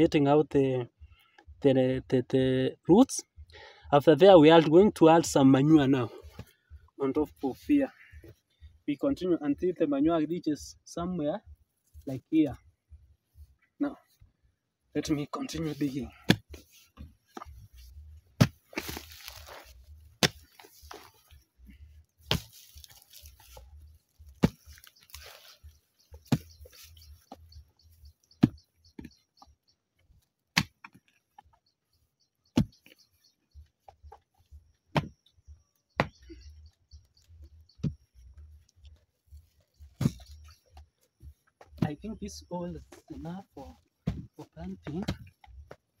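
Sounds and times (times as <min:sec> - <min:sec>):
soil scraping: 0:15.0 - 0:29.1, 0:37.7 - 0:40.6
hoe chopping into soil: 0:18.4 - 0:21.1, 0:22.2 - 0:23.6, 0:24.3 - 0:25.4, 0:32.5 - 0:32.9.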